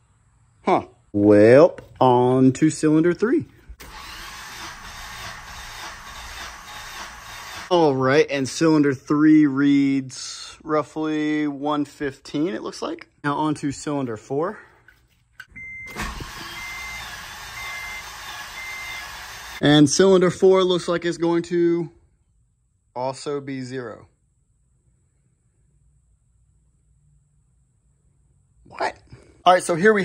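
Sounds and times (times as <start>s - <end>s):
starter motor cranking engine: 3.8s - 7.7s
dashboard warning chime: 15.5s - 17.0s.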